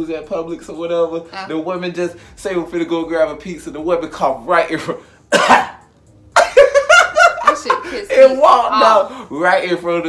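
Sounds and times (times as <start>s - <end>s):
man coughing: 5.3s - 5.8s.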